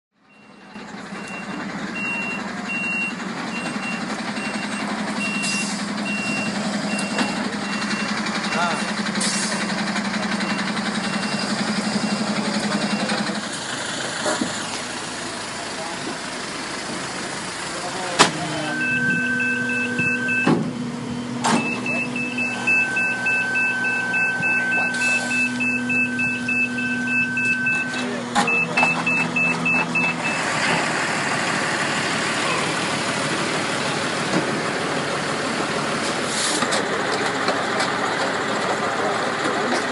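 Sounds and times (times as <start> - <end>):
truck engine running: 0.2 - 39.9
electronic warning beeper: 18.5 - 20.6, 21.5 - 30.5.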